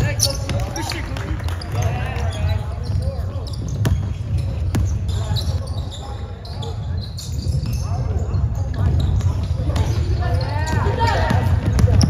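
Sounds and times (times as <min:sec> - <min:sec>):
basketball bouncing on wooden floor: 0:02.7 - 0:05.5, 0:08.8 - 0:12.0.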